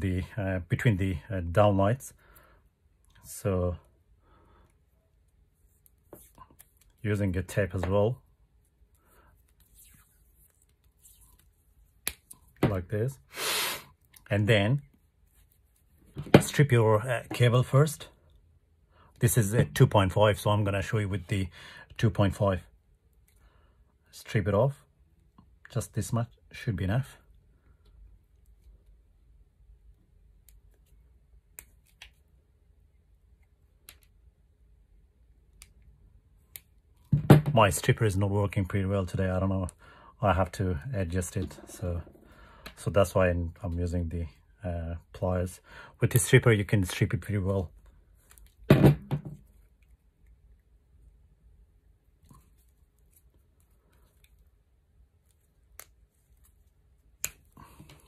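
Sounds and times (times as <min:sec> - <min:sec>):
soft rustles of cable handling: 0:01.9 - 0:13.2, 0:14.0 - 0:18.5, 0:25.1 - 0:34.3, 0:46.0 - 0:58.0.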